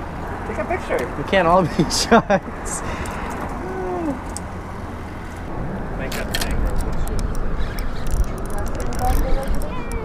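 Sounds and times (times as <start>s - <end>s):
wind: 0.0s - 10.0s
low rumble: 2.8s - 10.0s.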